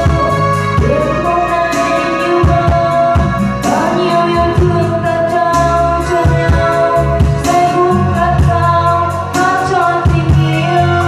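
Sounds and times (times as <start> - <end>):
backing music with bass and drums: 0.0 - 11.0
woman singing: 0.0 - 11.0.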